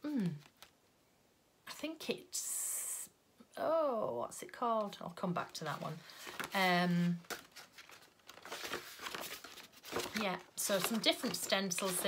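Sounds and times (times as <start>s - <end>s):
paper pages rustling: 5.5s - 12.0s.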